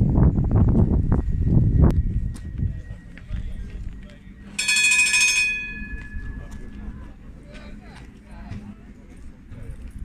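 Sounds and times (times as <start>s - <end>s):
low rumble: 0.0s - 4.6s
tram warning bell ringing: 1.2s - 7.4s.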